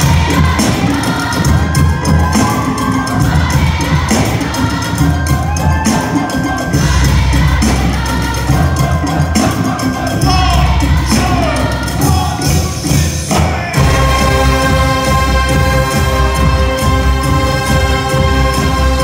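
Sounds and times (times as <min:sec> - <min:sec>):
crowd cheering: 0:00.0 - 0:07.0
steady drum beat: 0:00.0 - 0:19.0
wind band playing: 0:00.0 - 0:19.0.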